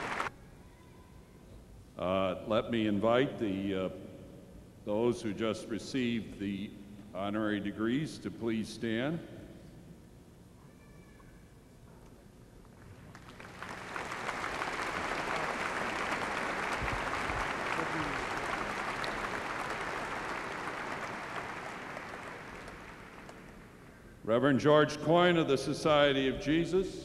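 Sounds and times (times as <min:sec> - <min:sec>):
large audience applauding: 0:00.0 - 0:00.3, 0:12.9 - 0:23.7.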